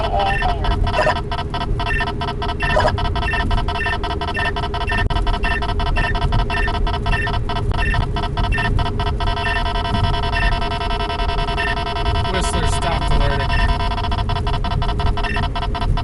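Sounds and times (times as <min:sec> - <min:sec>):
radar detector chirps and beeps: 0:00.0 - 0:16.0.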